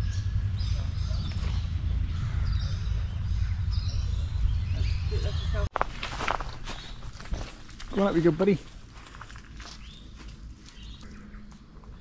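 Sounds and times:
footsteps through dry bush: 5.7 - 12.0.

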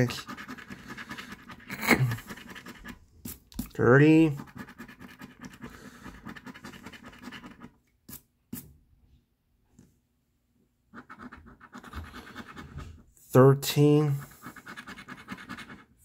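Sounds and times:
coin scraping scratch-off ticket: 0.0 - 2.8.

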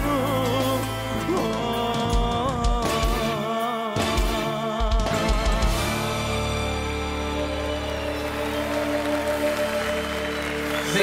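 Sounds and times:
live band holding a chord: 0.0 - 11.0
audience applause: 5.9 - 11.0.

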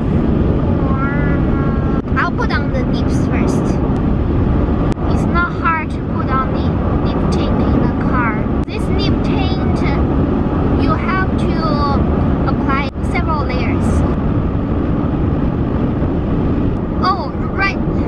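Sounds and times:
road and engine rumble in car: 0.0 - 18.0
woman's high voice: 0.8 - 3.8, 5.1 - 10.0, 10.8 - 14.0, 17.0 - 18.0.

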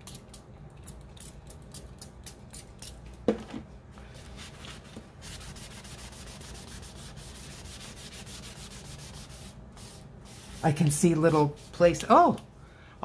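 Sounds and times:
paper towel rubbing on cardboard: 4.4 - 11.9.

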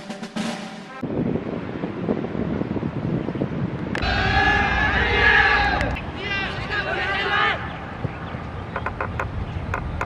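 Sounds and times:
drum roll music: 0.0 - 1.0
wind on microphone: 1.0 - 6.8.

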